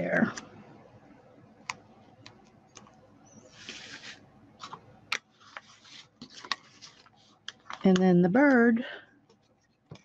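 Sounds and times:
paper rustling and sliding: 3.4 - 7.8.

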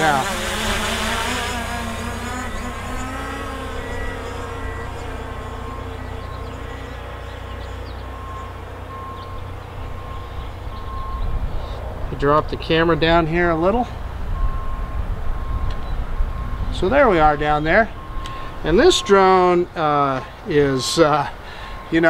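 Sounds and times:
drone propellers buzzing: 0.0 - 12.2
wind rumble on microphone: 14.0 - 18.7.

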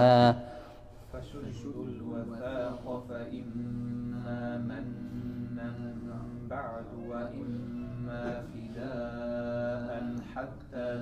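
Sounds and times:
man chanting melodically: 0.0 - 0.5, 1.1 - 11.0.

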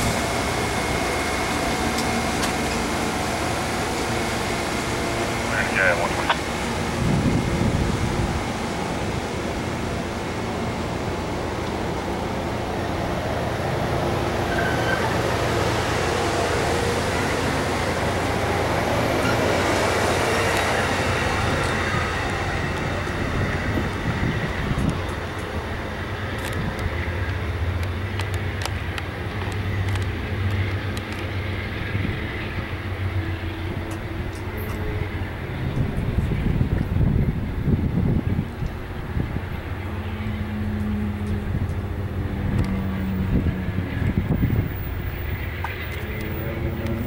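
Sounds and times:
passenger train passing: 0.0 - 47.0.

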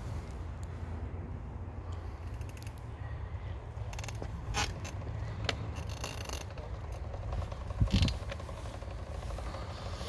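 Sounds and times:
phone handling rumble: 3.7 - 10.0.

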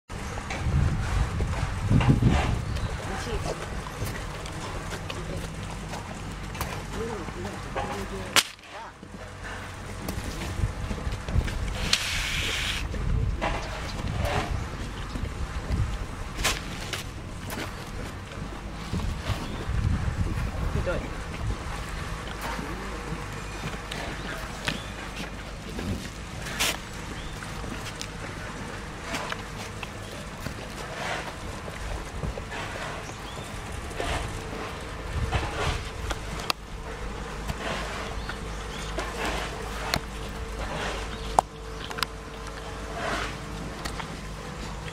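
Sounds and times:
wind on microphone: 0.1 - 5.0, 10.0 - 23.3, 30.1 - 38.7
low steady rumble: 0.1 - 44.9
horse breathing out: 30.8 - 34.7, 42.8 - 43.5.

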